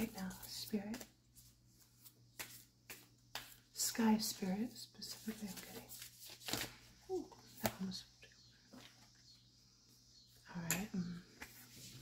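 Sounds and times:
cards being shuffled: 0:00.1 - 0:03.6, 0:05.1 - 0:07.9.

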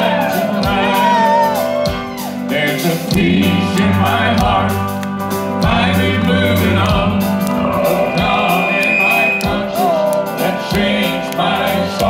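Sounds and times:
live country gospel band: 0:00.0 - 0:12.0
long high sung note: 0:03.4 - 0:10.2.

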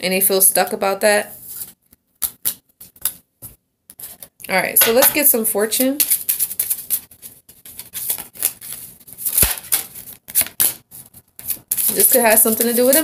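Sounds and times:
cards being shuffled: 0:06.0 - 0:13.0.

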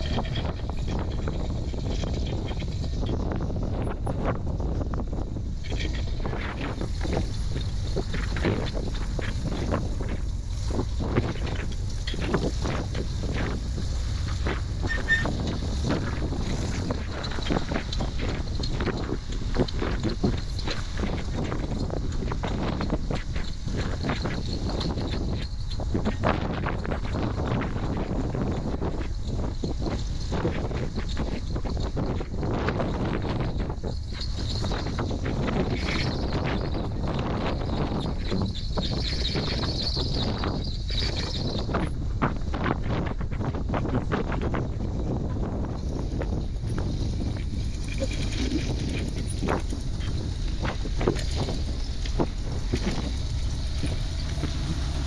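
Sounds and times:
buggy engine running: 0:00.0 - 0:55.0
wind buffeting microphone: 0:00.0 - 0:55.0.

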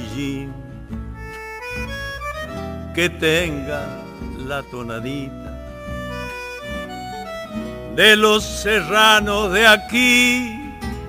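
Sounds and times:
accordion melody: 0:00.0 - 0:11.0
steady low bass: 0:00.0 - 0:11.0.

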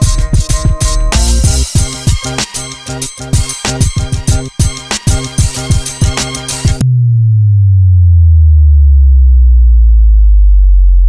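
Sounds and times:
deep synth bass gliding down: 0:06.6 - 0:11.0.

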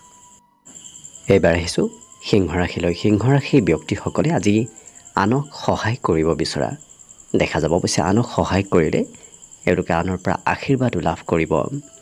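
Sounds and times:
high-pitched pulsing trill: 0:00.0 - 0:12.0
man talking: 0:01.3 - 0:06.8, 0:07.4 - 0:11.8.

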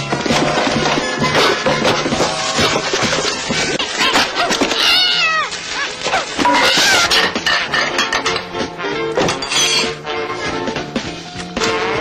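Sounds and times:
cartoon soundtrack music: 0:00.0 - 0:12.0.

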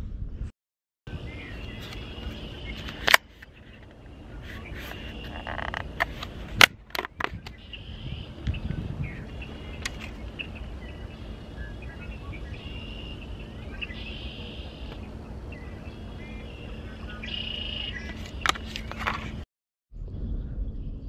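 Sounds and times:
faint chirping: 0:07.4 - 0:18.6.

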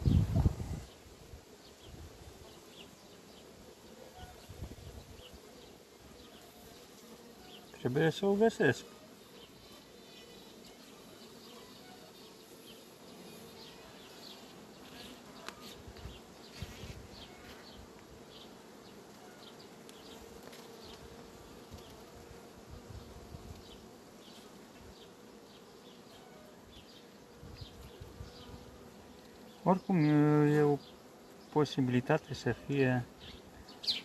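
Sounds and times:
honeybees humming: 0:00.0 - 0:34.0.

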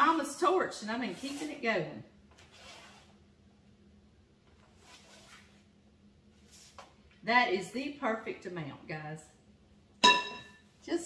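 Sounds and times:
soft brushing sounds: 0:01.0 - 0:01.7, 0:02.4 - 0:03.2, 0:04.6 - 0:05.7, 0:06.3 - 0:07.0.

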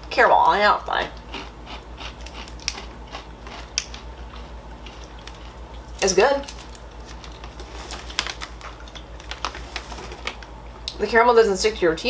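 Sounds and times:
low steady hum: 0:00.0 - 0:12.0
plastic packaging crinkling: 0:04.9 - 0:10.6.

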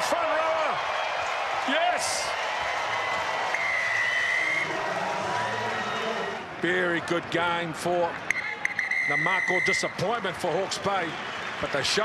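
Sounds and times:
stadium crowd applauding: 0:00.0 - 0:12.0.

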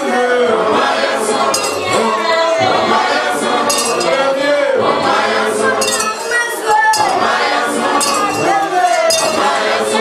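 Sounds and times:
choir singing gospel: 0:00.0 - 0:10.0.

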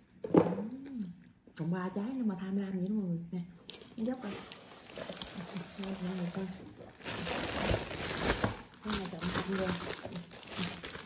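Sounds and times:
plastic bags crinkling: 0:03.7 - 0:11.0.

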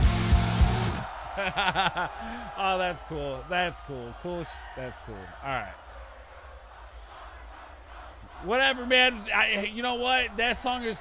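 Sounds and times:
man laughing: 0:01.4 - 0:02.6.

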